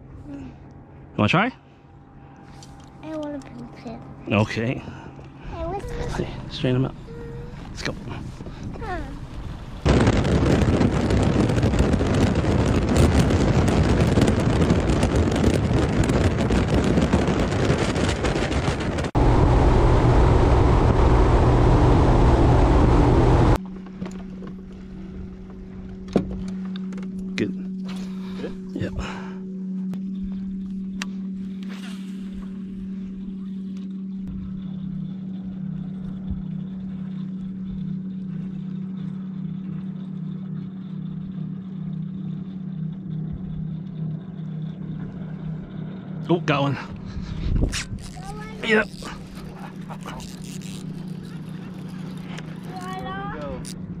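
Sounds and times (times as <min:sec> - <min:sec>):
boat engine running fast: 0:00.0 - 0:54.0
low hum: 0:00.0 - 0:54.0
wind noise on microphone: 0:07.1 - 0:23.6, 0:47.0 - 0:53.9.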